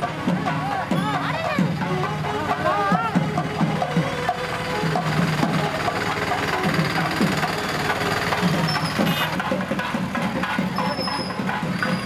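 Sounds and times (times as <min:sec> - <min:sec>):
procession music with percussion: 0:00.0 - 0:12.0.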